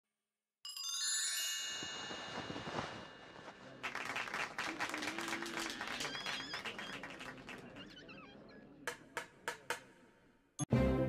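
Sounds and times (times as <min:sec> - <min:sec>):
audience applause: 0:03.7 - 0:07.9.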